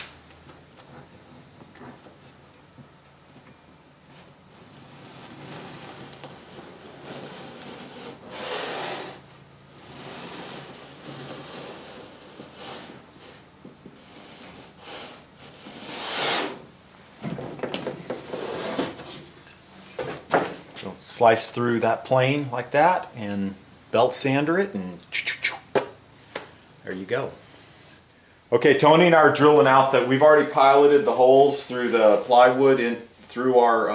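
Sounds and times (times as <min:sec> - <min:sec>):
wooden blocks rubbing on plywood: 0:04.1 - 0:16.7, 0:17.7 - 0:19.4
pencil scribing on wood: 0:14.0 - 0:16.6.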